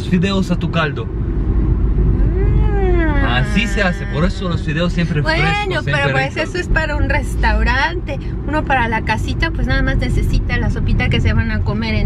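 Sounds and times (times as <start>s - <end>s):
car cabin road rumble: 0.0s - 12.0s
voice drawn-out rising sound: 2.2s - 6.4s.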